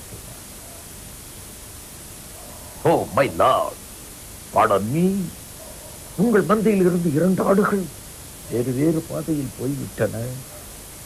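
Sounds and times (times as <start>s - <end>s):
steady background hiss: 0.0s - 11.0s
man talking: 2.8s - 3.8s, 4.5s - 5.4s, 6.2s - 10.5s.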